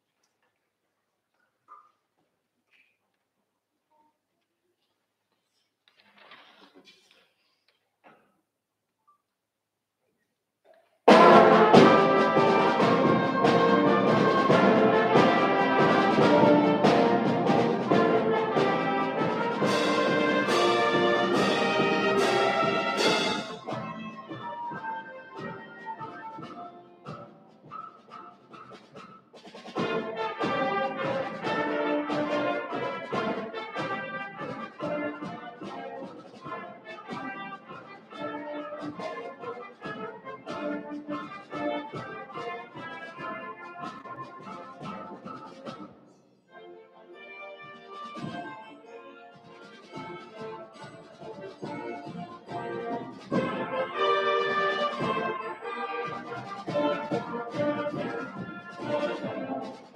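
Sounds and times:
concert band playing: 11.1 - 27.2, 29.7 - 45.1, 49.7 - 59.9
trumpets: 11.1 - 29.0, 29.6 - 45.8, 46.5 - 59.9.

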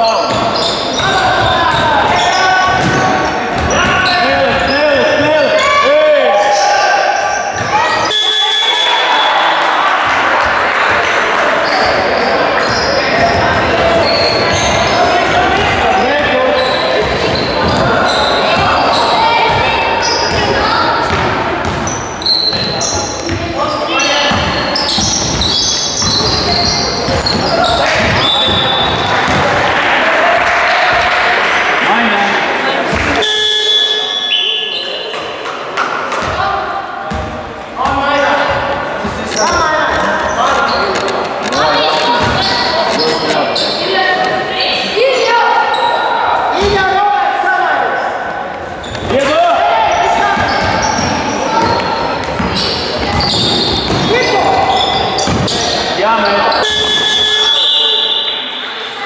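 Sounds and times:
sneakers squeaking: 0.0 - 31.4, 32.6 - 47.1, 48.0 - 59.0
people calling out: 0.0 - 35.2, 37.8 - 59.0
basketball bouncing on wooden floor: 0.3 - 4.7, 17.0 - 18.0, 19.4 - 23.4, 24.3 - 29.5, 42.1 - 42.6, 50.4 - 54.6, 55.2 - 55.6.

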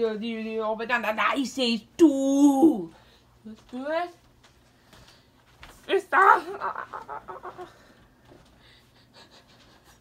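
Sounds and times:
person cackling: 6.2 - 7.9.

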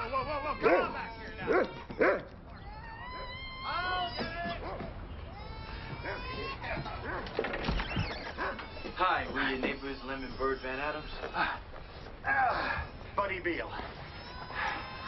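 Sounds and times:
dog whining: 0.0 - 13.1, 13.8 - 15.0
dog barking: 0.6 - 2.3.

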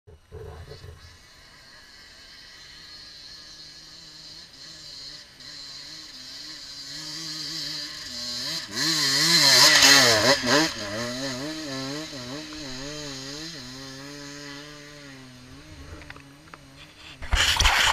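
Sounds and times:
dirt bike engine revving: 0.1 - 17.9.

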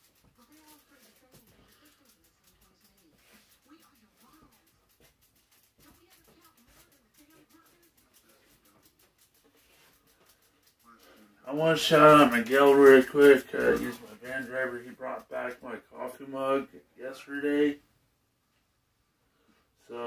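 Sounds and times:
person talking quietly: 10.8 - 17.8.

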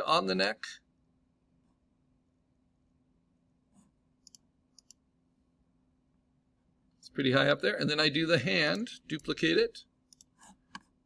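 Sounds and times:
faint steady hum: 0.0 - 11.0
computer mouse clicks: 4.2 - 5.0, 10.1 - 10.9.

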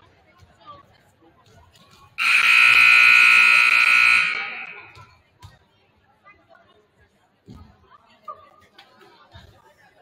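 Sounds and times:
scoreboard horn blast: 2.2 - 5.0.

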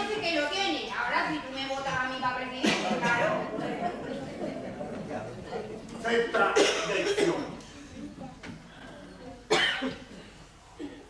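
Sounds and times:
person coughing: 2.6 - 3.4, 6.6 - 7.6, 9.5 - 11.0.

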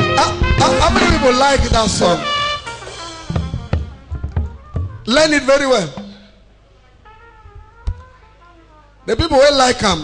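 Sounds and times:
low bass notes: 0.0 - 5.2
drum kit strokes: 0.0 - 6.4.

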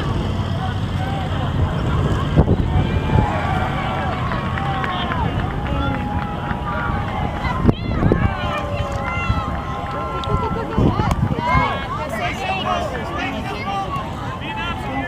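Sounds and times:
wind rumble on microphone: 0.0 - 12.4
distant calls and shouts: 0.0 - 15.0.

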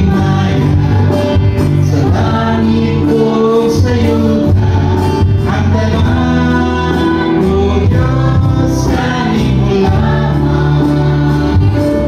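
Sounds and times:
electronic keyboard: 0.0 - 12.0
people singing: 0.0 - 12.0
strummed acoustic guitars: 0.0 - 12.0.

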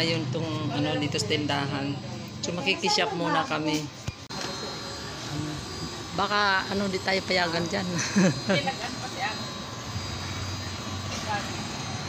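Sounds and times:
street background hum: 0.0 - 12.0.

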